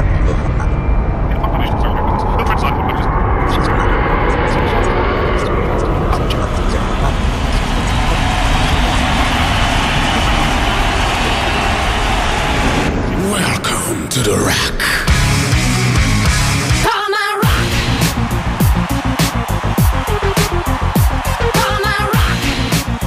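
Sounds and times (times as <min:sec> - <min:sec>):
propeller plane engine drone: 0:00.0 - 0:13.2.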